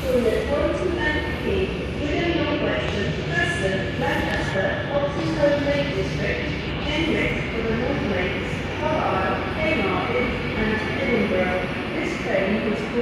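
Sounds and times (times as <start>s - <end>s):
background voices talking: 0.0s - 13.0s
electric train rumble: 0.0s - 13.0s.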